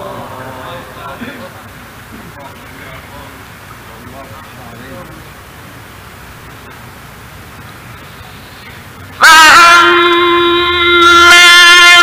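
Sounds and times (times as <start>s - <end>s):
man chanting: 0.0s - 1.4s
recording hiss: 0.0s - 12.0s.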